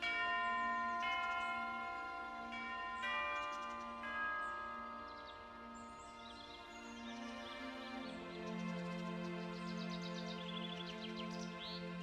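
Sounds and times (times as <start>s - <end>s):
slow ringing bell tones: 0.0s - 7.0s.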